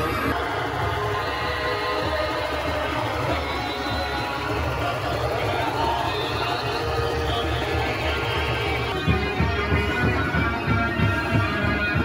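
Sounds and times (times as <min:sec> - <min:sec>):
loud music with heavy bass: 0:00.0 - 0:12.0.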